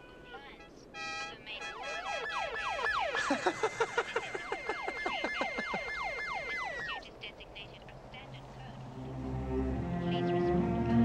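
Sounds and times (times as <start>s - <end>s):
police siren yelping: 1.7s - 7.1s.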